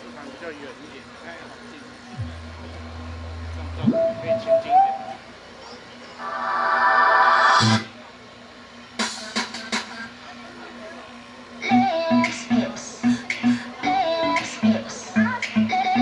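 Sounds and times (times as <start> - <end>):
dance music over loudspeakers: 11.7 - 16.0.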